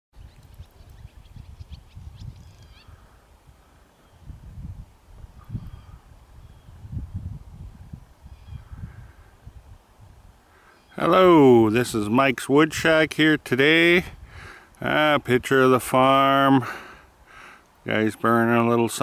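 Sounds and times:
distant bird calls: 0:00.2 - 0:04.3, 0:05.3 - 0:06.9, 0:08.2 - 0:09.4, 0:10.4 - 0:11.1
wind buffeting microphone: 0:00.2 - 0:10.4.

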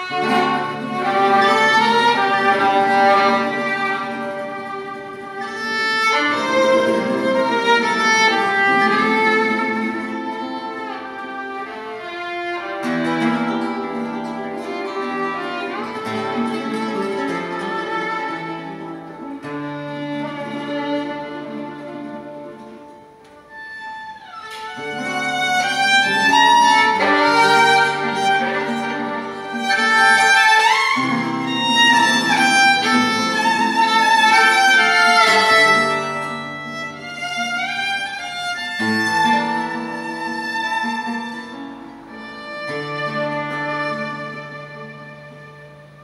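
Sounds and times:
acoustic guitar accompaniment: 0:00.0 - 0:46.0
violin playing a melody: 0:00.0 - 0:46.0.

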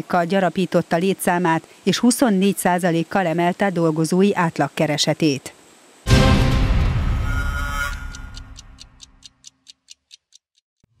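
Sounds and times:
clock-like ticking: 0:07.8 - 0:10.6.

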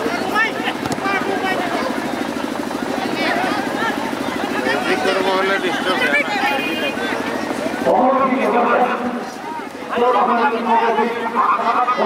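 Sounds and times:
fast-pulsing drone: 0:00.0 - 0:12.0
spectators chatting: 0:00.0 - 0:12.0.

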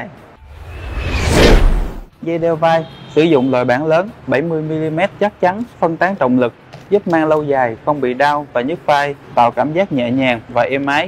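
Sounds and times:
whoosh sound effect: 0:00.4 - 0:02.1.

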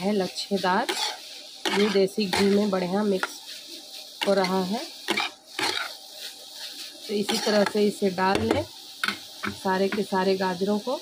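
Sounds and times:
spatula stirring: 0:00.0 - 0:10.7
carrots sizzling in oil: 0:00.0 - 0:11.0.

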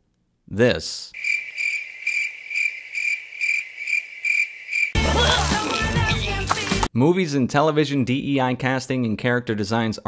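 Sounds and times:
crickets chirping: 0:01.2 - 0:05.0.

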